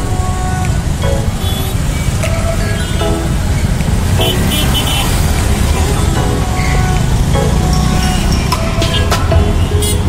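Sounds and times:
auto-rickshaw engine rumbling: 0.0s - 10.0s
music playing: 0.0s - 10.0s.

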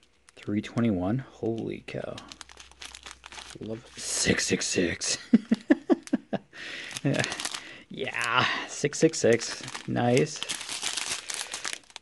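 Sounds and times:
man laughing: 5.0s - 7.4s.

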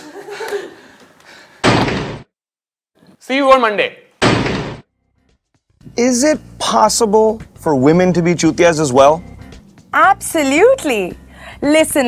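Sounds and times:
rubber stamp slam thud: 1.6s - 2.3s, 4.2s - 4.9s.

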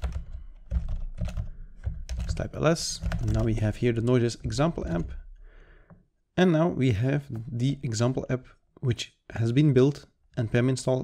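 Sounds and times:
typing on computer keyboard: 0.0s - 3.6s.

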